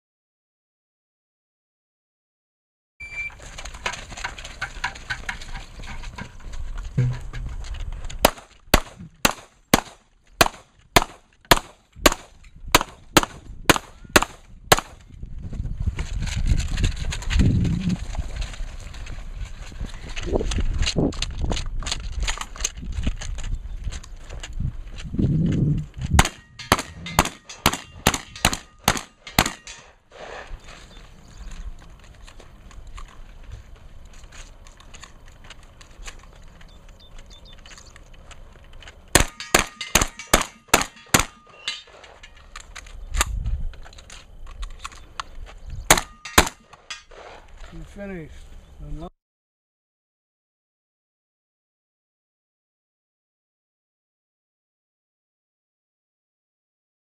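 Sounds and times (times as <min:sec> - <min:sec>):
handgun shots: 0:08.2 - 0:15.0, 0:26.2 - 0:29.9, 0:39.1 - 0:42.1, 0:45.9 - 0:47.0.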